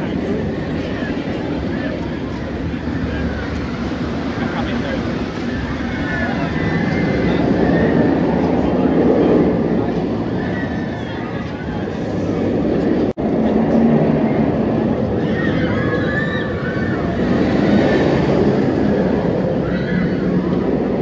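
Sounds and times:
people's voices: 0.0s - 21.0s
roller coaster train rumbling on track: 0.0s - 21.0s.

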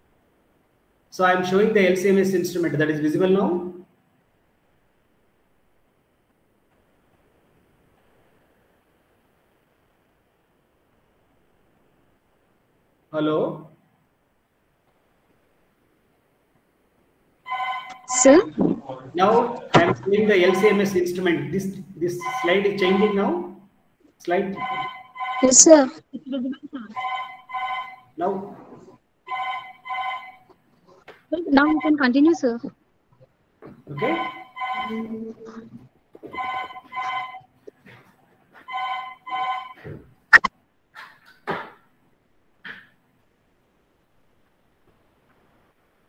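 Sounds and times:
electronic ringtone: 17.5s - 18.2s, 20.4s - 21.1s, 22.2s - 23.5s, 24.5s - 25.8s, 27.0s - 28.2s, 29.3s - 30.5s, 31.5s - 32.1s, 34.0s - 35.3s, 36.3s - 37.5s, 38.7s - 39.9s.

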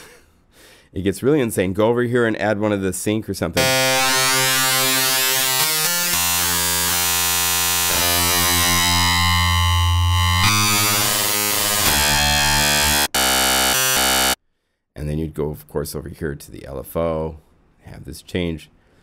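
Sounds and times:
buzzy distorted synthesizer note: 3.6s - 14.4s.

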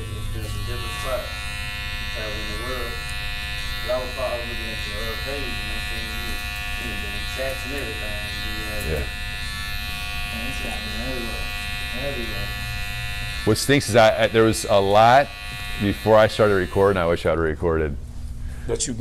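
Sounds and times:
electric hair clippers buzzing: 0.0s - 17.4s.

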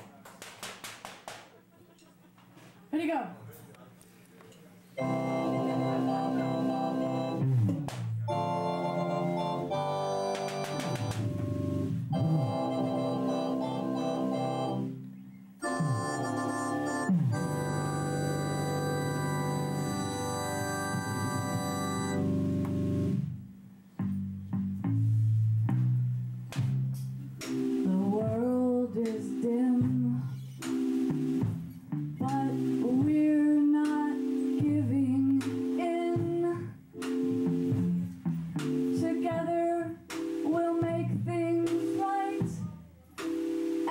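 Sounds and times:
electric organ chords: 5.0s - 43.9s
woman singing: 27.8s - 30.4s, 32.2s - 36.8s, 38.9s - 42.8s.

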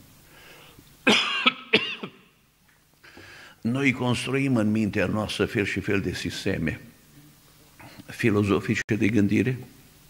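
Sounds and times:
man coughing: 1.0s - 2.3s.

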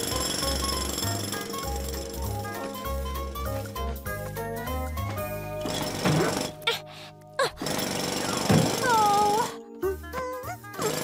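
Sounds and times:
fast rattling buzz: 0.0s - 3.7s, 7.5s - 9.6s.

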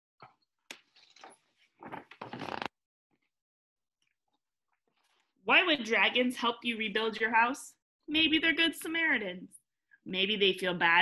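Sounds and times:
paper pages rustling: 0.7s - 2.8s.

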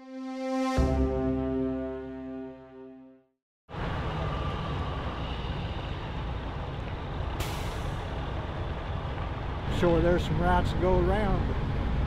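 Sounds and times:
music: 0.0s - 3.4s
diesel engines idling: 3.7s - 12.0s
air brake hiss: 7.4s - 8.3s.

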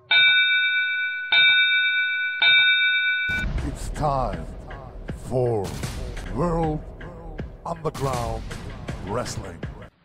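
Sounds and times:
bell ringing: 0.0s - 3.4s.

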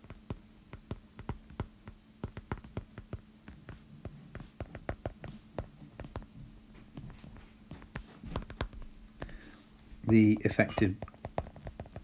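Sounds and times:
stylus tapping on glass screen: 0.0s - 6.3s, 7.7s - 9.4s, 10.0s - 12.0s
faint steady hum: 0.0s - 12.0s.

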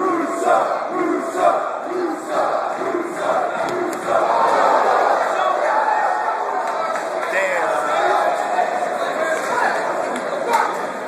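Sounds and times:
crowd chanting: 0.0s - 11.0s
crowd shouting and cheering: 0.0s - 11.0s.

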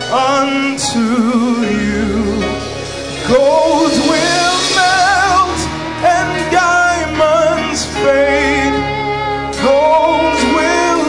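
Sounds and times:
instrumental accompaniment: 0.0s - 11.0s
singer with vibrato: 0.0s - 11.0s.

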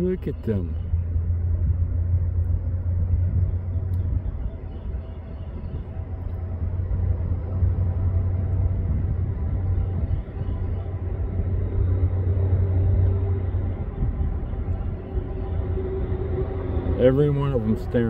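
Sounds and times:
faint hum: 0.0s - 18.0s
road traffic rumble: 0.0s - 18.0s.

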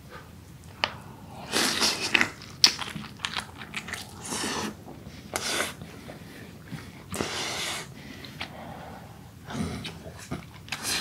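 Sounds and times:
breathy hiss: 0.0s - 2.4s, 3.8s - 11.0s.

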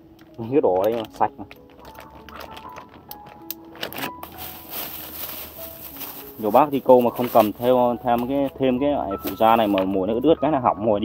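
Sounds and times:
plastic packet crinkling: 0.3s - 10.0s
flour shaken out rustling: 4.2s - 8.5s.

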